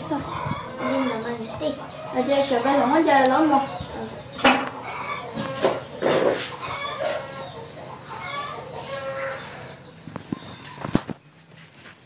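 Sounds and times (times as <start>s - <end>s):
chickens clucking: 0.0s - 12.0s.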